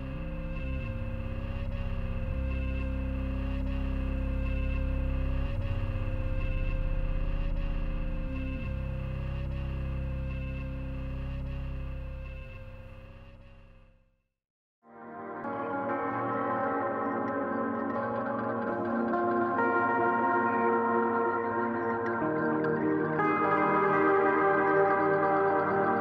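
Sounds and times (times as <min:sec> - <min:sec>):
held electric bass notes: 0:00.0 - 0:13.7.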